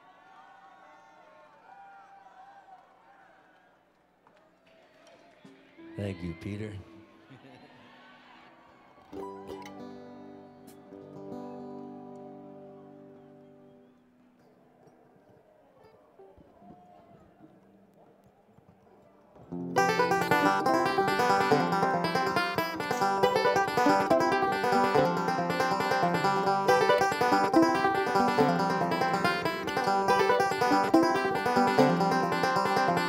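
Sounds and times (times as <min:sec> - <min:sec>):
fast plucked string picking: 0:19.5 - 0:33.0
acoustic string band playing: 0:19.6 - 0:33.0.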